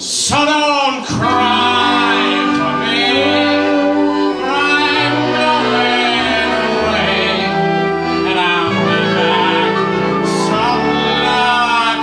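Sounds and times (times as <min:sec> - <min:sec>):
live band playing: 0:01.1 - 0:12.0.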